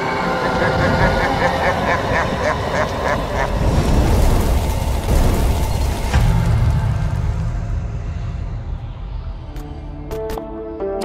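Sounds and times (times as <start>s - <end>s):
deep noisy rumble: 0.0s - 10.4s.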